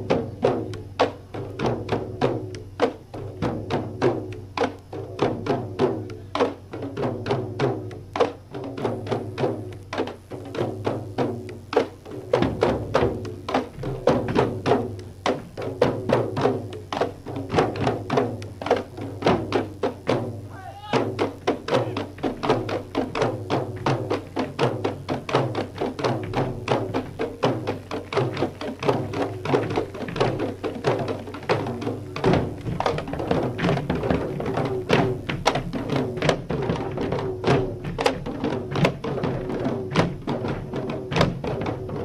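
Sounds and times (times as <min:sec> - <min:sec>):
barrel drums beaten fast: 0:00.0 - 0:42.0.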